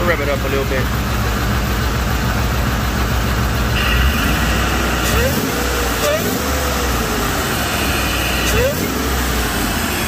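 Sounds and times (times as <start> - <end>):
car engine revving: 0.0 - 10.0
high supercharger whine: 0.0 - 10.0.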